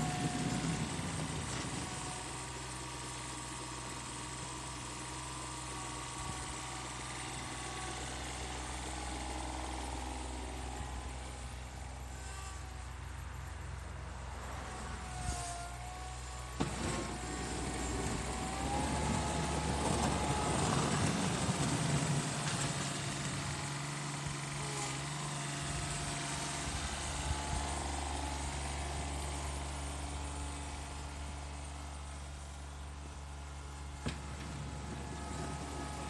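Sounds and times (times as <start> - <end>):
mower diesel engine driving by: 0.0 - 36.0.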